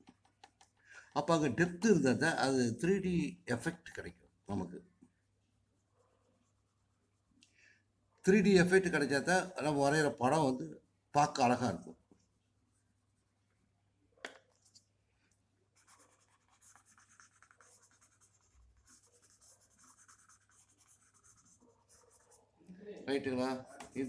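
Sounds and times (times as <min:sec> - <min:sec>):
drawing tool scratching paper: 0:15.8 - 0:22.5, 0:23.5 - 0:24.0.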